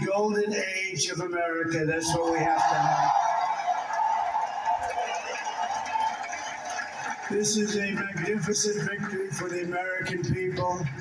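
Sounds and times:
crowd cheering and applauding: 0:02.1 - 0:11.0.

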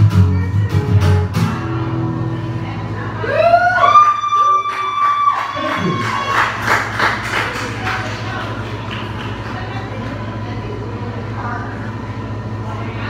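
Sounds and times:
audience cheering whoop: 0:03.2 - 0:07.4
scattered clapping: 0:04.4 - 0:10.4.

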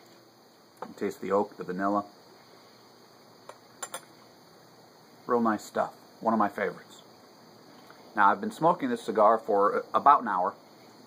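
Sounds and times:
glass clinking: 0:03.8 - 0:04.1.

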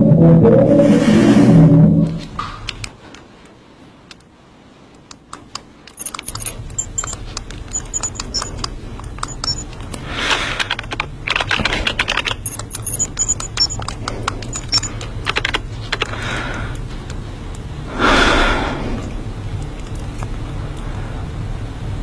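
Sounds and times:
typing on computer keyboard: 0:05.4 - 0:16.5.

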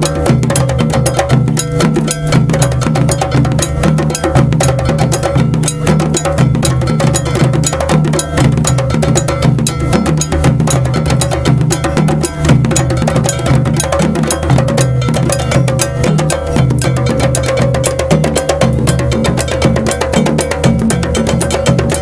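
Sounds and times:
djembes: 0:00.0 - 0:22.0
dunun bass drums: 0:00.0 - 0:22.0.

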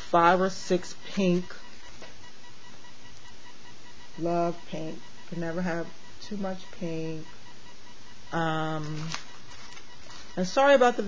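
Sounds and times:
faint thin electronic tone: 0:00.0 - 0:11.0.

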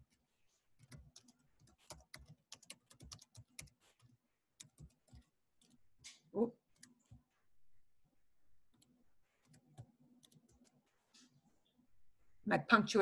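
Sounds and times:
computer keyboard typing: 0:00.8 - 0:05.8, 0:06.7 - 0:07.3, 0:08.7 - 0:10.8.

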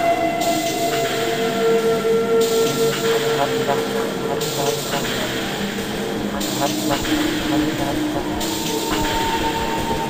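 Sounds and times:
droning electronic tones: 0:00.0 - 0:10.0
rushing train-like noise: 0:00.0 - 0:10.0.

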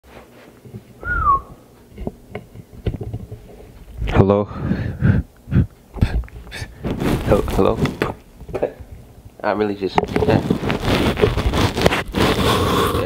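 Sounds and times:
falling whistle-like tone: 0:01.0 - 0:01.6.

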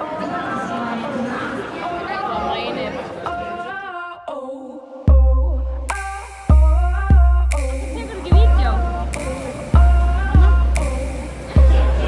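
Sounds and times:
chatter of voices: 0:00.0 - 0:03.9, 0:07.6 - 0:12.0
held musical tones: 0:05.1 - 0:12.0.

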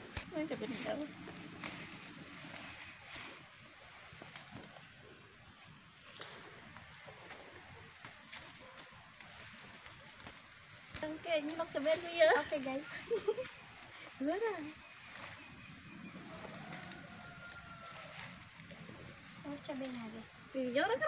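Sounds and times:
leaves rustling: 0:00.0 - 0:21.0.

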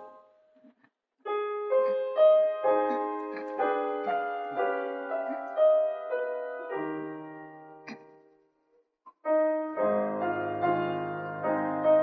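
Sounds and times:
piano hymn chords: 0:00.0 - 0:00.3, 0:01.3 - 0:08.3, 0:09.3 - 0:12.0.

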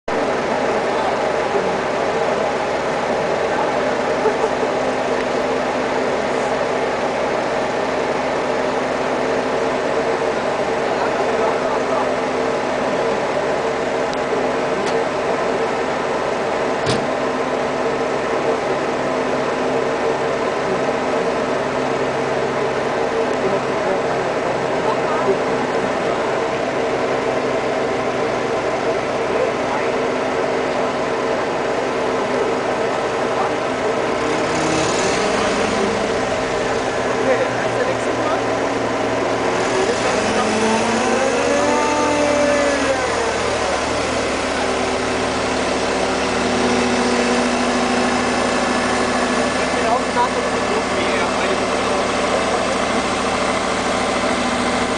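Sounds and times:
crane engine humming: 0:00.1 - 0:54.9.

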